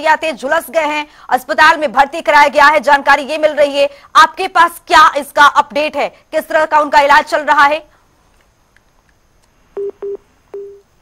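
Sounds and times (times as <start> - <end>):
low telephone beeps: 9.8 - 10.8.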